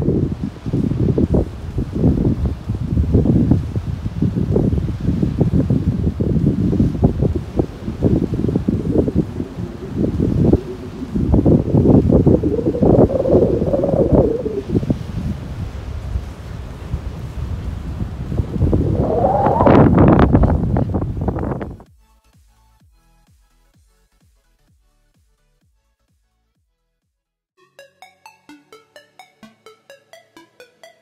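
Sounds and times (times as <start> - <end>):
wind gusts on microphone: 0.0 - 21.8.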